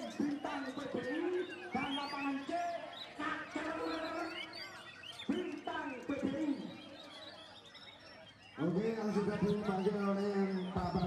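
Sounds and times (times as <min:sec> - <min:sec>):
songbirds chirping and whistling: 0:00.0 - 0:11.0.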